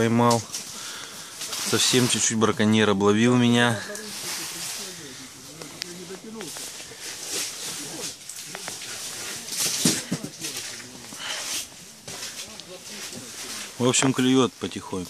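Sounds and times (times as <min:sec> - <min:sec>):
faint indistinct voices: 0:00.0 - 0:15.0
rustling handling noise: 0:00.0 - 0:15.0
steady hiss: 0:00.0 - 0:15.0.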